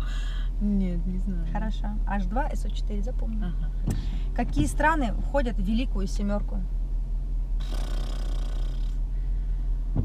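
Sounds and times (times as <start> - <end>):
car cabin rumble: 0.6 - 7.6, 8.6 - 10.0.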